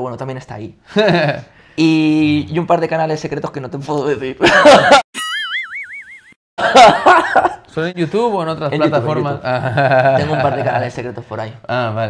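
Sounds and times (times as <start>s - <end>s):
man laughing: 4.4s - 5.7s, 6.6s - 7.6s, 9.1s - 10.8s.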